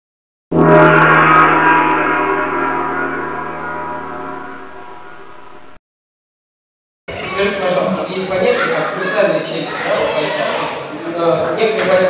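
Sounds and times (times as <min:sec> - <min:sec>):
gong ringing: 0:00.6 - 0:05.4.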